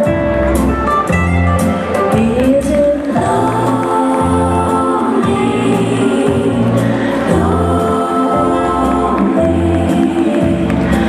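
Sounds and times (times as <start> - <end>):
slow foxtrot dance music: 0.0 - 11.0
people singing: 2.4 - 11.0.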